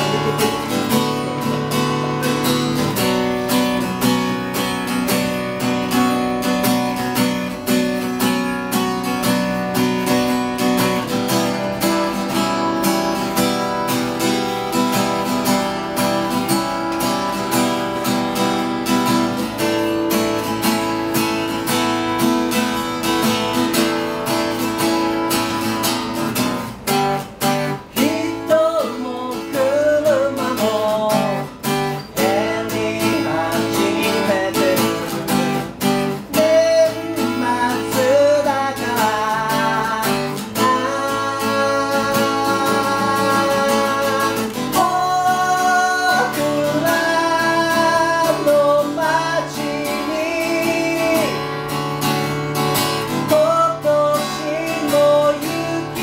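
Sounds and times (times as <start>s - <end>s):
man singing: 0.0s - 4.2s, 27.6s - 52.3s, 52.9s - 56.0s
acoustic guitar strumming: 0.0s - 56.0s.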